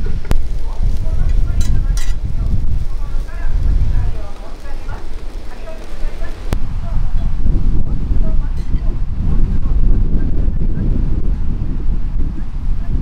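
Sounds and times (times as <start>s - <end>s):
faint voices: 0.0s - 11.6s
wind buffeting microphone: 0.0s - 13.0s.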